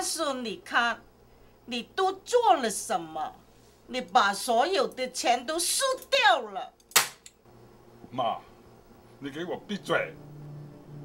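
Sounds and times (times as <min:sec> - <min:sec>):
sharp crack: 0:06.9 - 0:07.3.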